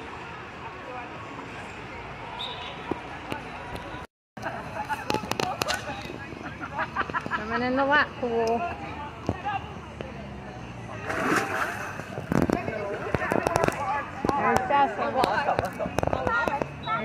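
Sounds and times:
water splashing: 0:10.9 - 0:14.0.

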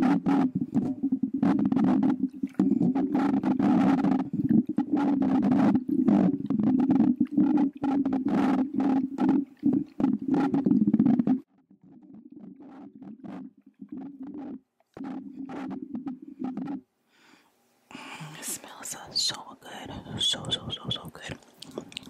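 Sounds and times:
glass bottle scraping microphone: 0:00.0 - 0:16.8.

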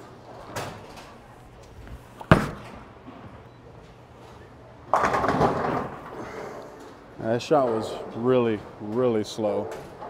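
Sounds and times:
bowling ball thudding on lane: 0:02.2 - 0:02.9
bowling ball rolling rumble: 0:04.9 - 0:07.0.

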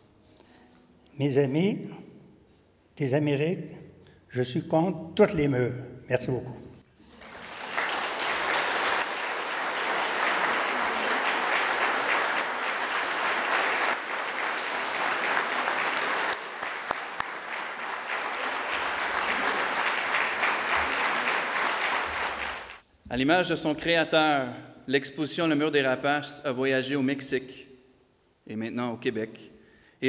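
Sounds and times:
audience applauding: 0:07.0 - 0:22.8.

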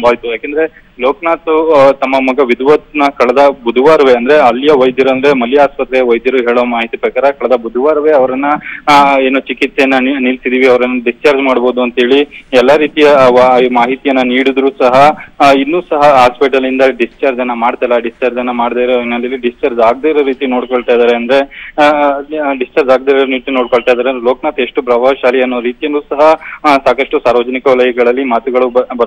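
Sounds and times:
narrator talking: 0:00.0 - 0:29.0.

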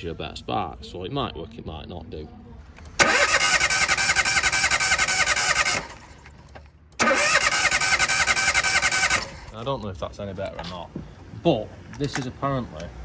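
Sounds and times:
starter motor cranking engine: 0:02.8 - 0:06.4, 0:07.0 - 0:09.6.

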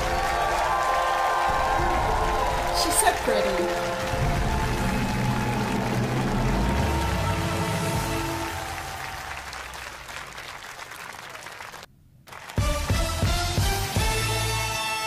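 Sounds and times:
television show music: 0:00.0 - 0:09.4, 0:12.5 - 0:15.0
studio audience applause: 0:00.0 - 0:13.3.

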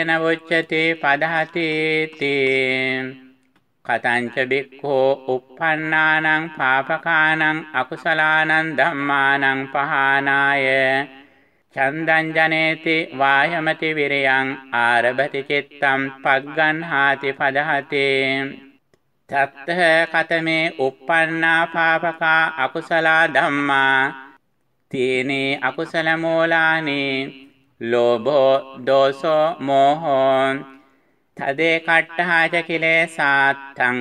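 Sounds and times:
man chanting scripture: 0:00.0 - 0:34.0.

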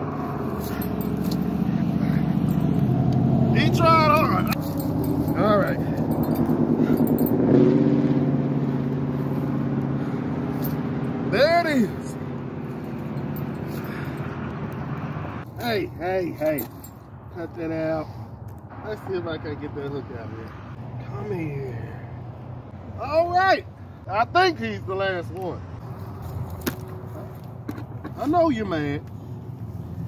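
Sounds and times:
engine running steadily: 0:00.0 - 0:16.9.

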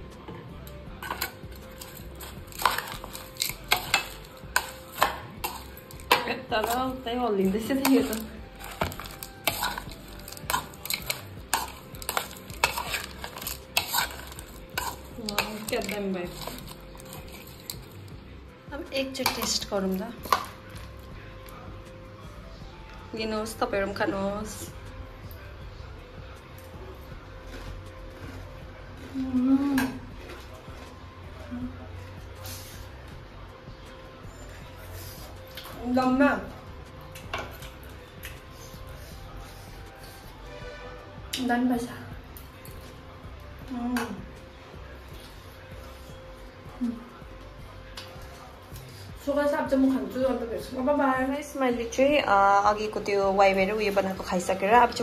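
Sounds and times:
quiet background music: 0:00.0 - 0:55.0
metal spoon scraping a bowl: 0:01.0 - 0:18.0, 0:19.2 - 0:20.6.

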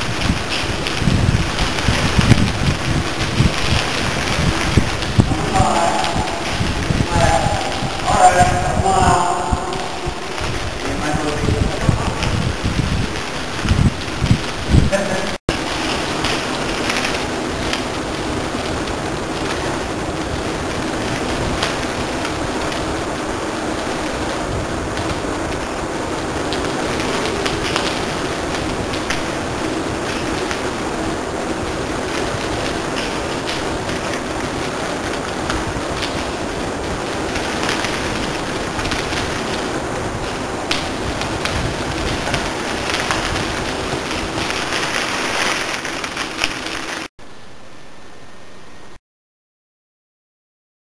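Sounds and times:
bicycle rolling on crushed stone: 0:00.0 - 0:08.9, 0:09.5 - 0:47.1
air rushing over microphone: 0:00.0 - 0:47.1.

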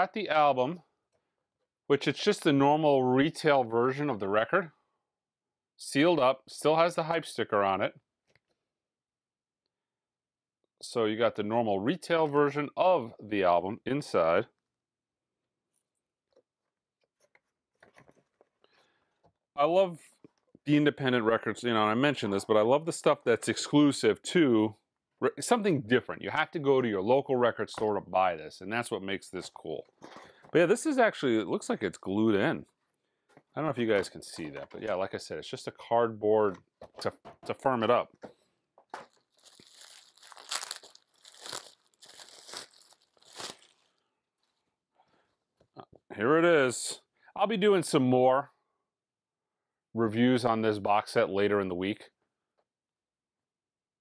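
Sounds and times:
cardboard packaging rustling: 0:36.8 - 0:44.0.

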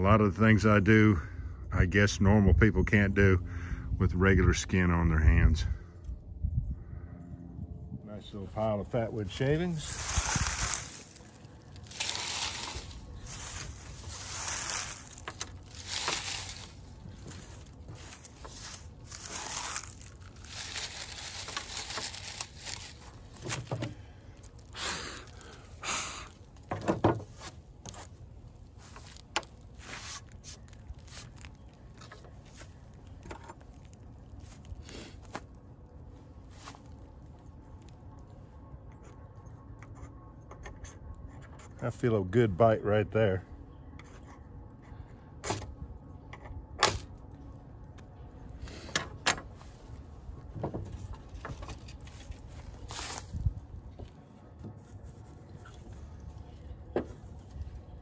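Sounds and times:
dry leaves rustling and crackling: 0:09.1 - 0:38.3, 0:49.5 - 0:58.0.

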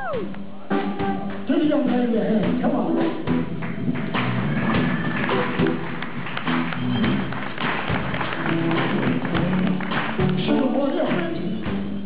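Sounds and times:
blues band playing: 0:00.0 - 0:12.0
drum kit beat: 0:00.0 - 0:12.0
hand claps: 0:03.6 - 0:11.8.

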